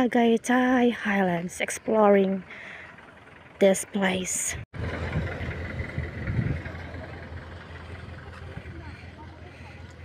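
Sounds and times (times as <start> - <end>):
wind buffeting microphone: 4.8 - 10.0.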